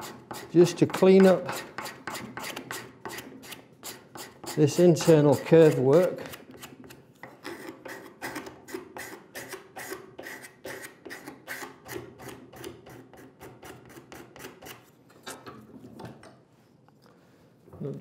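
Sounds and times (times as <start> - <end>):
card scraper scraping wood: 0.0 - 14.8.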